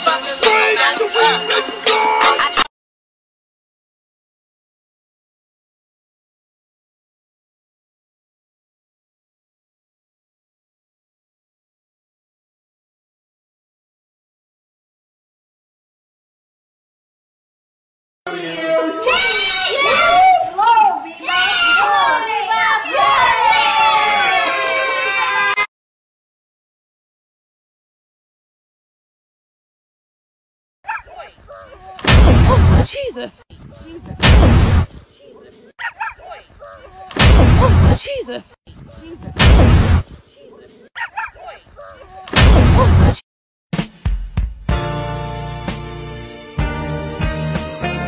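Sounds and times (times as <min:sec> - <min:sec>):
high-pitched voice exclaiming: 0:18.4 - 0:24.4
loud distorted blast: 0:34.2 - 0:34.9, 0:39.4 - 0:40.0.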